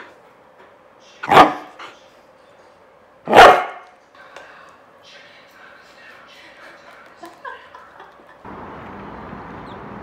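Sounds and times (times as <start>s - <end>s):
dog barking: 1.2s - 1.7s, 3.3s - 3.9s.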